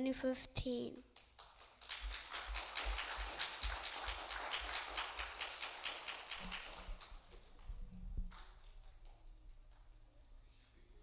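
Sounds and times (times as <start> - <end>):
audience clapping: 1.2 - 9.2.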